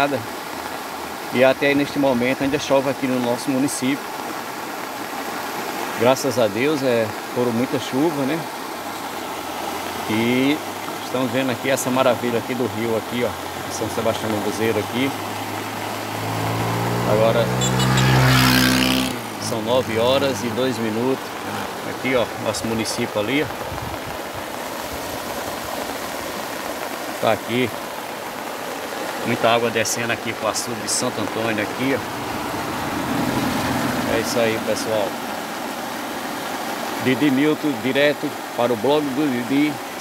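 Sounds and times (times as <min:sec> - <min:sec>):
river water rushing: 0:00.0 - 0:40.0
vehicle engine hum: 0:11.9 - 0:22.4, 0:31.1 - 0:35.8.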